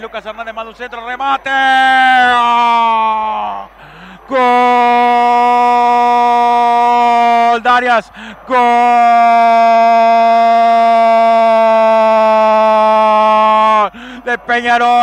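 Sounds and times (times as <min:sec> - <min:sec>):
commentator's drawn-out goal cry: 0:01.1 - 0:15.0.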